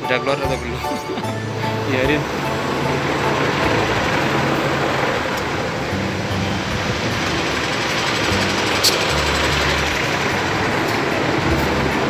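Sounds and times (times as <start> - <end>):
bus engine running: 0.0 - 12.0
street traffic: 0.0 - 12.0.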